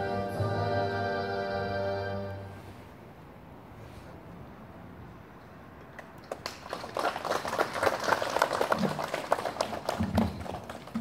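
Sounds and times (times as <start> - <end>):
people applauding: 6.0 - 11.0.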